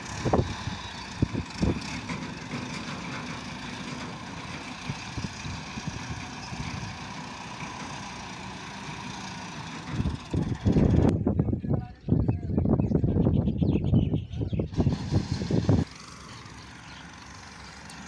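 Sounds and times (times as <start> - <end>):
tractor diesel engine running: 0.0 - 11.8, 14.5 - 18.0.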